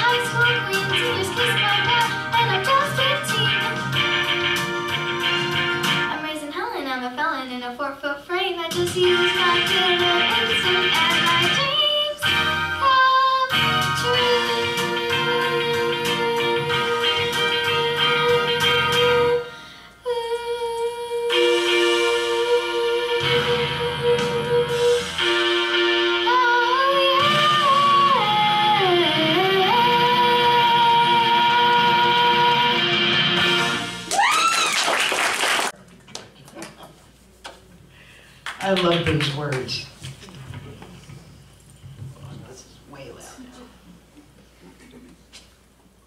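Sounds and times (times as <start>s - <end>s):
girl singing into a microphone: 0.0s - 4.0s, 6.1s - 25.1s, 26.2s - 32.8s
backing track of held chords: 0.0s - 6.3s.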